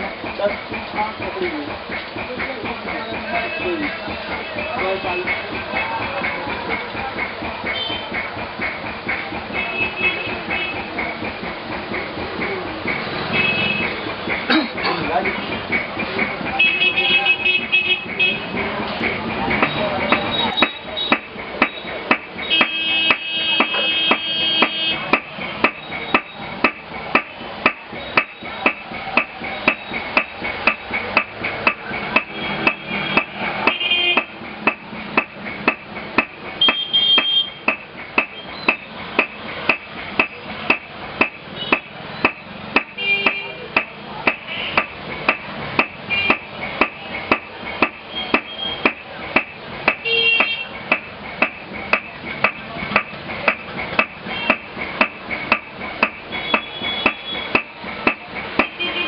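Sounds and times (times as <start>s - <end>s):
hammer blows: 1.8s - 59.0s.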